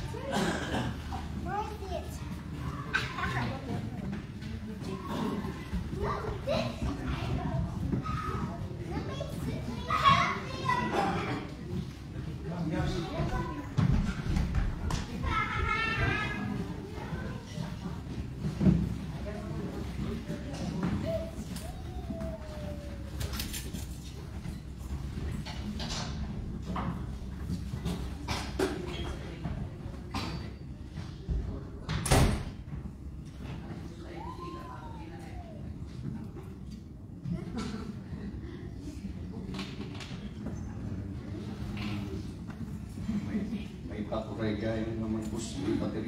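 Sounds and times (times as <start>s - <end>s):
children chattering in a hall: 0.0s - 46.0s.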